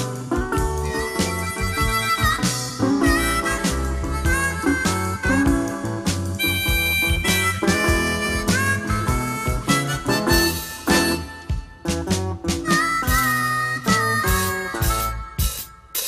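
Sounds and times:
guitar accompaniment: 0:00.0 - 0:16.0
harmonica with bent notes: 0:00.0 - 0:16.0.

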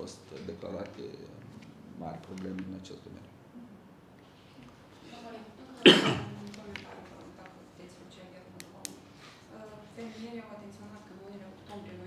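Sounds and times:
loud cough: 0:05.8 - 0:06.4.

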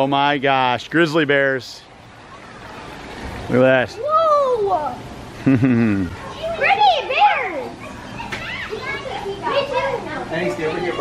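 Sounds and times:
children laughing: 0:05.2 - 0:10.0
children squealing: 0:06.2 - 0:09.3.

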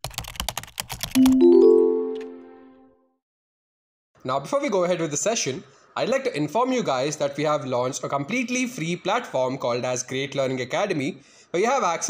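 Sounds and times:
computer keyboard typing clicks: 0:00.0 - 0:02.4
rising bell-like notes: 0:01.2 - 0:02.9.

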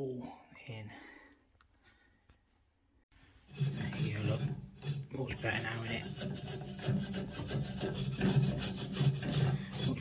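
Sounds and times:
abrasive pad scrubbing copper pipe: 0:03.4 - 0:10.0.

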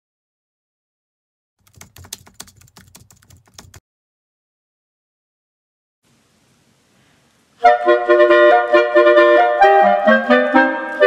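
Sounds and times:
rapid typing-like clicks: 0:01.6 - 0:03.8.

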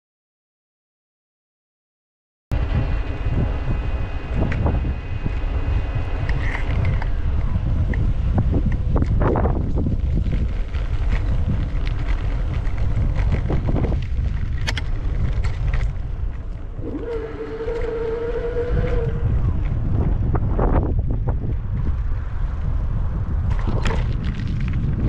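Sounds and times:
wind buffeting microphone: 0:02.5 - 0:25.0
steady pitched tone: 0:16.5 - 0:20.4.

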